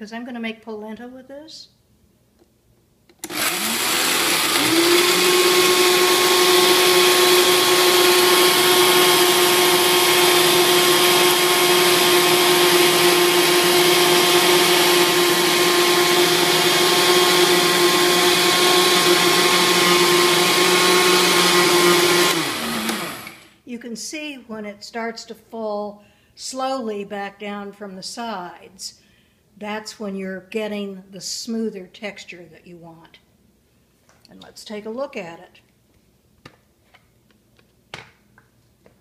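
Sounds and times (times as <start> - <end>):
blender motor whine: 3.2 - 23.6.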